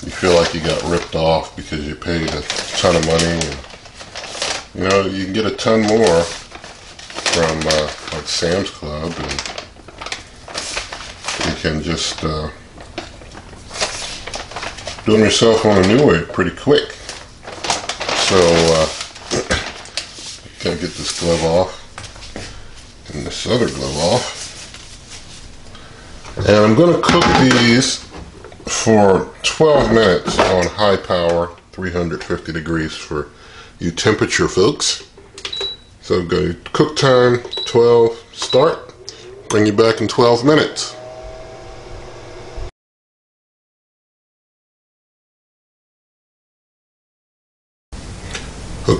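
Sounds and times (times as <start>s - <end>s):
plastic bag rustling: 0.0s - 33.1s
oven fan blowing with whine: 0.0s - 42.7s, 48.0s - 48.9s.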